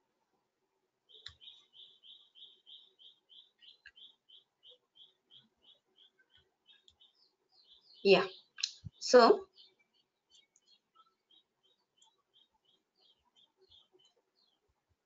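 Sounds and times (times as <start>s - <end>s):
faint bird chirps: 1.0s - 15.0s.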